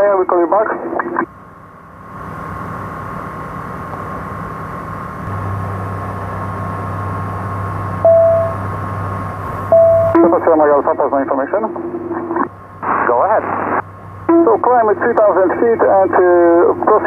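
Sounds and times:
aircraft engine drone: 0:00.0 - 0:17.0
short beep: 0:08.0 - 0:08.6, 0:09.7 - 0:10.2
radio hiss: 0:10.1 - 0:13.8.

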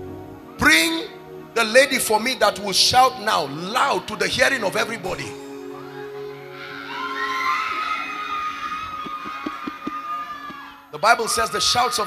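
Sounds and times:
congregation cheering: 0:02.5 - 0:12.0.

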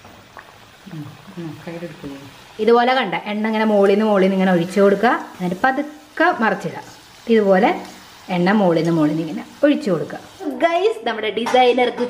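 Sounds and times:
pastry sizzling in hot oil: 0:00.0 - 0:11.5.

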